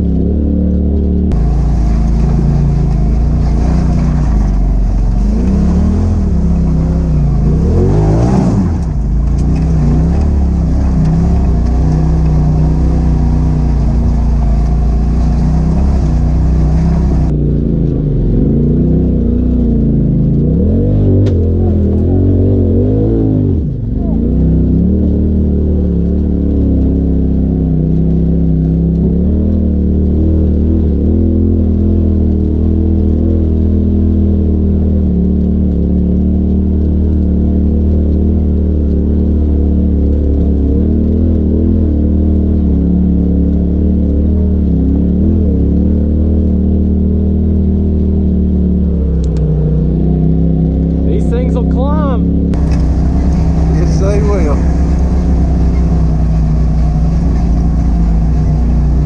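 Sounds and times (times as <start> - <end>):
utv engine revving: 0.0 - 59.0
utv engine running at low revs: 0.0 - 59.0.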